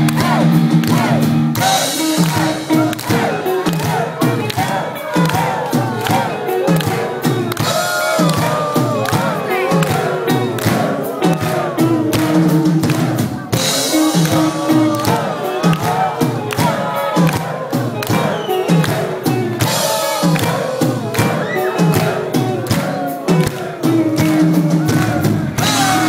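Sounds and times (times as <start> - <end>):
crowd cheering: 0.0 - 26.0
distorted electric guitars: 0.0 - 26.0
steady drum beat: 0.0 - 26.0.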